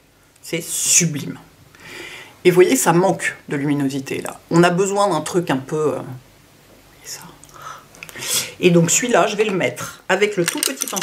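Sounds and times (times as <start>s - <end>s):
woman whispering a word: 7.0s - 7.4s.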